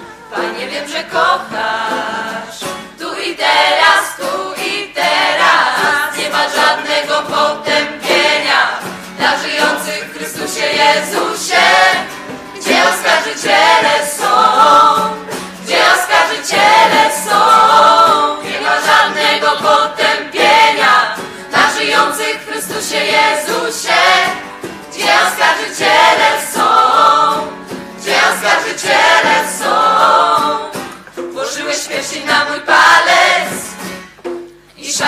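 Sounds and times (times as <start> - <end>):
choir singing a religious song: 0.3 - 33.8, 34.8 - 35.0.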